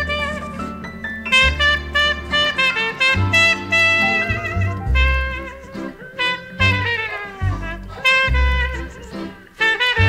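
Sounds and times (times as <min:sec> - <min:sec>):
plucked bass notes: 0:00.0 - 0:09.3
trumpet melody: 0:00.0 - 0:10.0.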